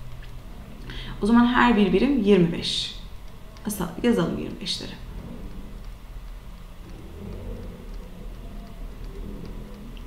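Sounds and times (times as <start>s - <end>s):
low electrical hum: 0.0s - 10.0s
faint ticks: 3.2s - 10.0s.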